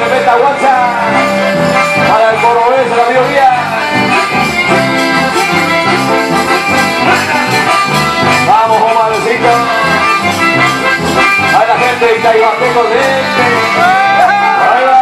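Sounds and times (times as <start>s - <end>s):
accordions playing: 0.0s - 15.0s
electric bass line: 0.0s - 15.0s
guitars: 0.0s - 15.0s.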